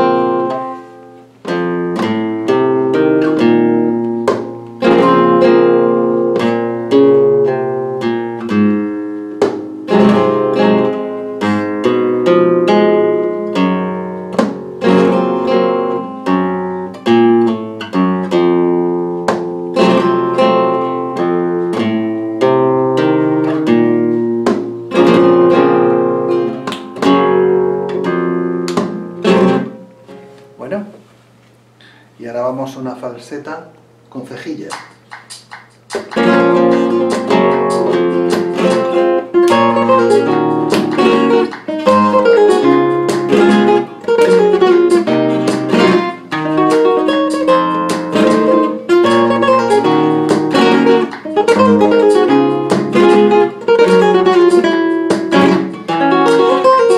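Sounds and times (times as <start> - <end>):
strummed guitar chords: 0.0 - 30.7, 34.9 - 56.9
flamenco guitar melodic runs: 0.0 - 31.1, 33.8 - 56.9.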